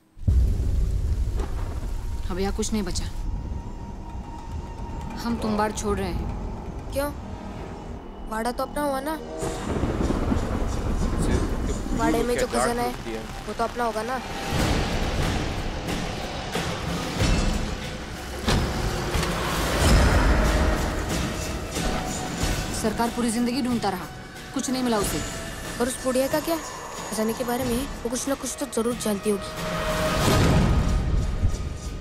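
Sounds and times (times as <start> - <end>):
low rumble: 0.0 - 28.3.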